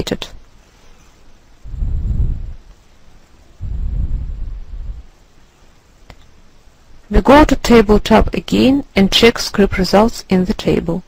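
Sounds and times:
low dull rumble: 0:01.6 - 0:02.8, 0:03.5 - 0:05.3.

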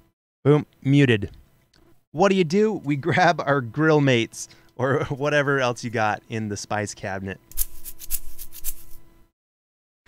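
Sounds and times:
seasoning grains rattling in bottle: 0:07.5 - 0:09.0.

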